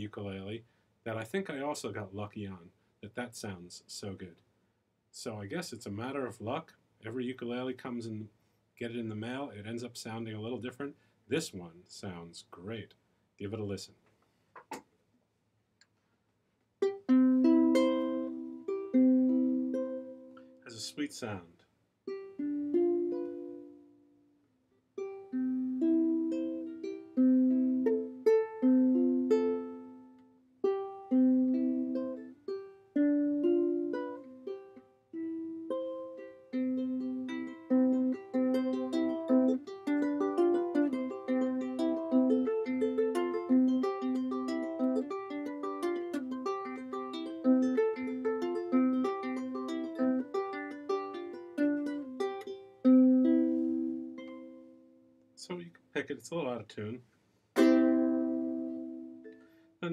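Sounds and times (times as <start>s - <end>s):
ukulele chords and strumming: 16.8s - 21.4s, 22.0s - 55.1s, 57.6s - 59.9s.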